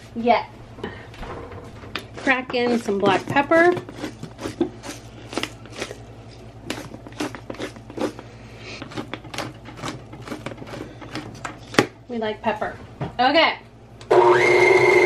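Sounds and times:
pepper mill grinding: 2.1s - 11.8s.

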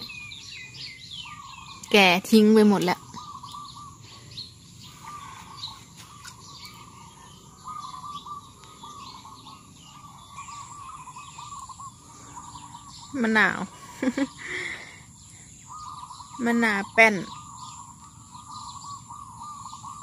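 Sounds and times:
higher bird chirps: 0.0s - 20.0s
bird repeating warbling phrase: 15.8s - 17.6s.

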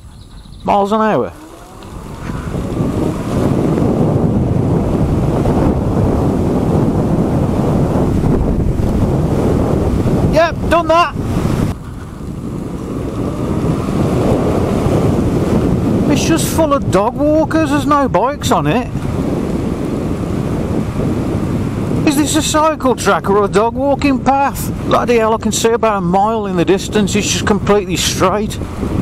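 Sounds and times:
wind buffeting microphone: 0.0s - 29.0s
tyres rumbling over gravel: 0.8s - 5.4s, 10.7s - 16.5s.

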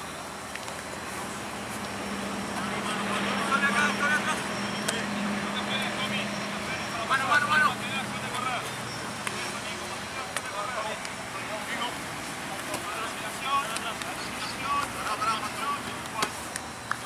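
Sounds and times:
low engine hum: 0.0s - 17.0s
players shouting calls: 1.4s - 17.0s.

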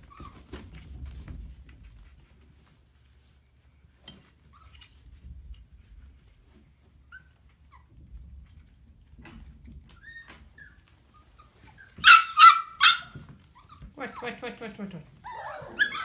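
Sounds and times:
puppies whining: 0.0s - 0.7s, 6.8s - 8.1s, 9.8s - 14.4s, 15.1s - 16.0s
puppies yipping: 9.9s - 14.4s, 15.2s - 16.0s.

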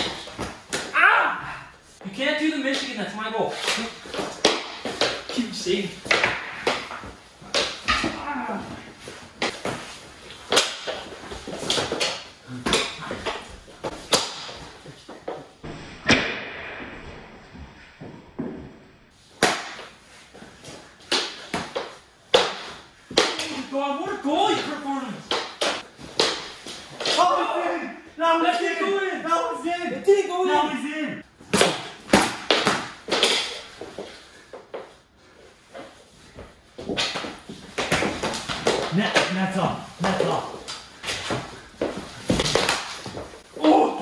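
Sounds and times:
hockey sticks clacking: 0.0s - 1.0s, 2.6s - 15.4s, 19.4s - 27.5s, 31.5s - 35.0s, 35.7s - 44.0s
shouts and grunts: 0.8s - 2.6s, 7.9s - 9.0s, 27.0s - 31.2s, 43.5s - 44.0s
bodies bumping and thudding: 40.0s - 43.5s.

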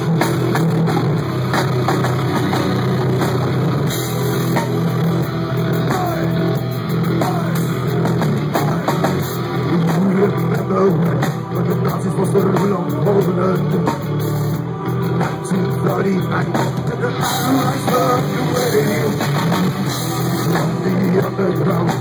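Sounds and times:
drum kit: 0.0s - 22.0s
electric guitar: 0.0s - 22.0s.

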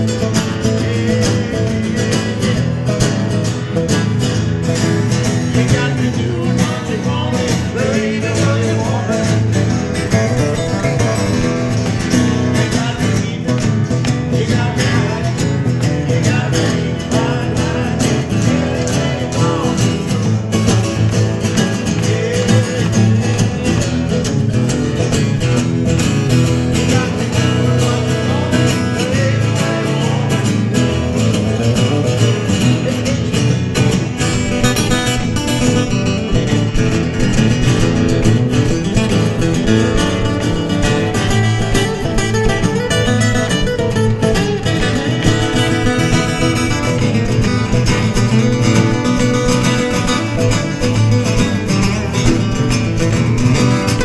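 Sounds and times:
acoustic guitars playing: 0.0s - 54.0s.

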